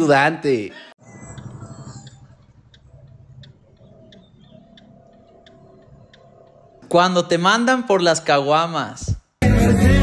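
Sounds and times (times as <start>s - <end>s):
car engine idling: 1.0s - 6.9s
turn signal ticking: 1.0s - 7.0s.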